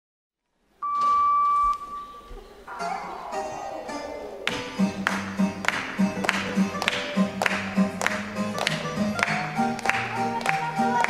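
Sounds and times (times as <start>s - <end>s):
electronic beep with echo: 0.8s - 4.8s.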